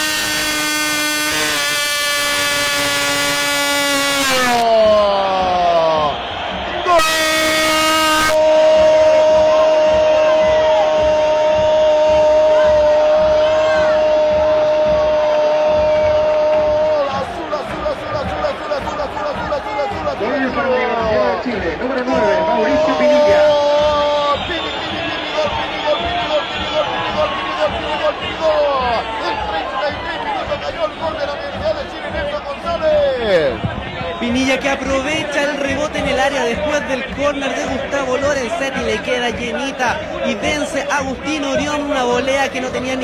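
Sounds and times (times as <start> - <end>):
commentator shouting goal call: 0.0 - 6.1, 6.8 - 15.0.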